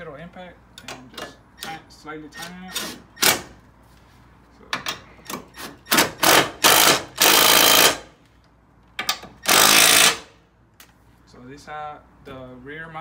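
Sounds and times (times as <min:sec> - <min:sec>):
cordless impact tool hammering: 0:05.3 - 0:08.1, 0:09.1 - 0:10.3.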